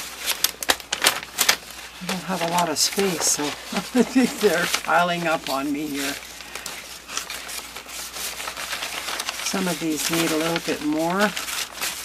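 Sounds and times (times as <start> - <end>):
paper sheets rustling: 0.0 - 12.0.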